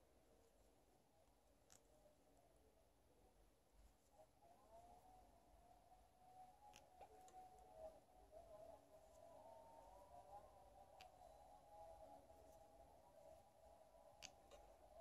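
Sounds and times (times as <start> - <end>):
faint clicks: 1.2 - 2.1, 6.3 - 7.9, 8.9 - 15.0
faint wavering tone: 4.0 - 15.0.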